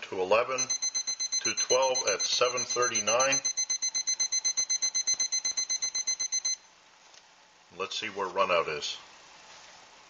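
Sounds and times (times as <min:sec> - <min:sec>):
thermometer alarm beeping rapidly: 0:00.6 - 0:06.6.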